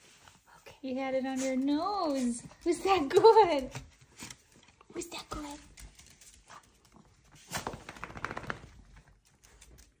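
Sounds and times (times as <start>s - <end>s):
dog claws clicking on tiles: 1.4s - 10.0s.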